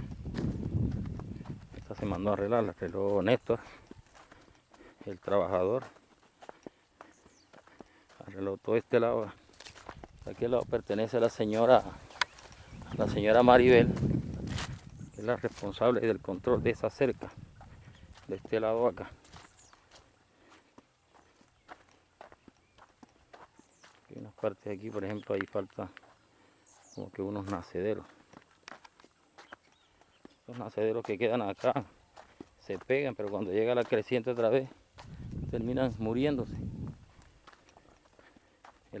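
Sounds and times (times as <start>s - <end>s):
footsteps crunching on dry grass: 0.0s - 39.0s.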